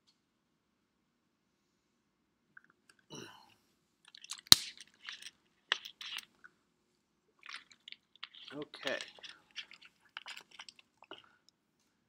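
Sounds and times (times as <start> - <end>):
small crackling noises: 2.5 - 6.6, 7.3 - 12.0.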